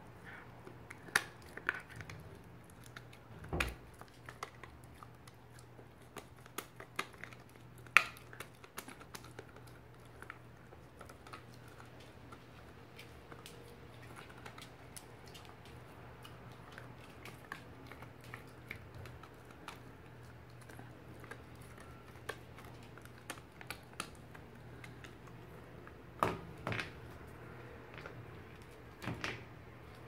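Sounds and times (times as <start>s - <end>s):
faint low hum: 0.0s - 30.0s
dog teeth clicking on chew toy: 2.8s - 12.4s.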